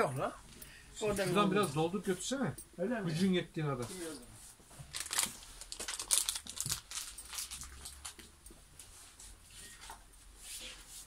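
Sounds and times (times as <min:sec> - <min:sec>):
belt rustling: 0:04.8 - 0:09.9.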